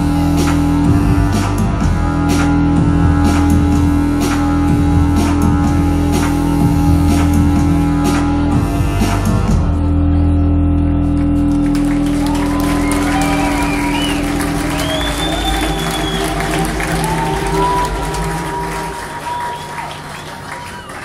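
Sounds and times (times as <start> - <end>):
audience applauding and cheering: 11.2 - 21.0
high wavering whistles: 12.4 - 21.0.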